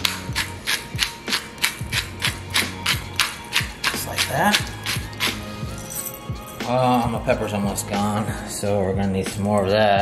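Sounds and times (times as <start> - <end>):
pepper mill grinding: 0.0 - 6.6.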